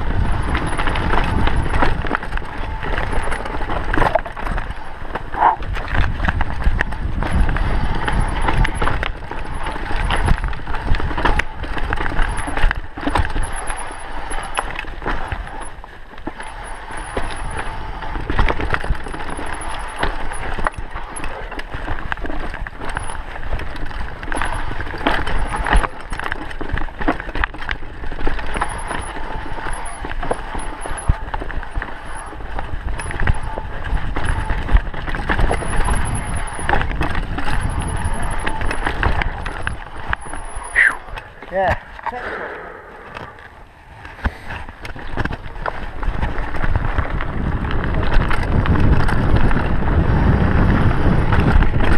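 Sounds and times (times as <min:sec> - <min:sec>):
bike rattling over rocks: 0:00.0 - 0:51.9
tyre noise on dirt: 0:00.0 - 0:51.9
steady low rumble: 0:38.1 - 0:47.6.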